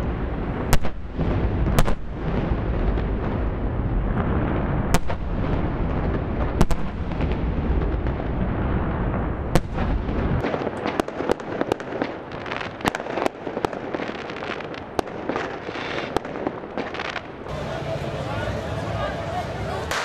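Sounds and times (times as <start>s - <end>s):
dynamite blasts booming: 0.0s - 17.5s
sharp firecracker-like cracks: 0.0s - 17.5s, 19.8s - 20.0s.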